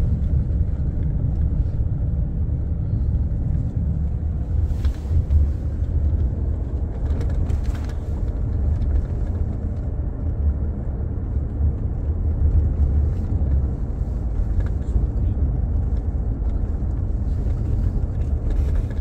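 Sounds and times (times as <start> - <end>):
car cabin road and engine rumble: 0.0 - 19.0.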